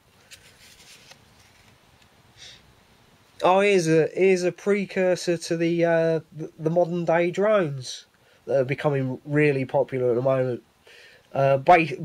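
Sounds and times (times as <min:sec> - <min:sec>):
paper page being turned: 0:00.2 - 0:01.8.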